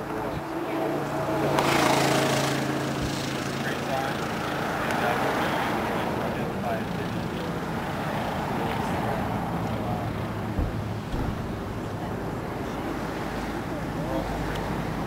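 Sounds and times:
murmured voices: 0.0s - 15.0s
steady low hum: 10.0s - 12.4s.

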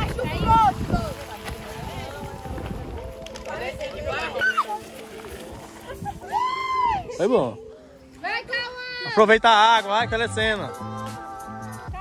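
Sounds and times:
children shouting and squealing: 4.1s - 5.0s, 5.8s - 7.2s.

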